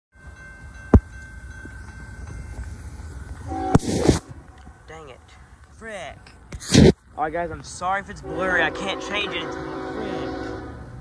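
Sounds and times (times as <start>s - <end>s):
freight train rumbling past: 0.2s - 6.5s, 7.1s - 11.0s
train horn chord: 3.4s - 4.4s, 8.2s - 11.0s.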